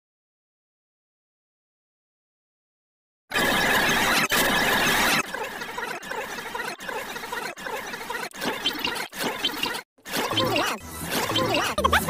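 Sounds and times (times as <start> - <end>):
overlapping cartoon soundtracks: 3.3 - 12.0.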